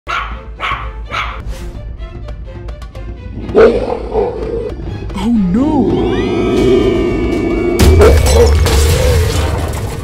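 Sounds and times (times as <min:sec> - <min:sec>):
puppy barking: 0:00.1 - 0:01.4, 0:03.5 - 0:04.7
light background music: 0:00.1 - 0:07.0.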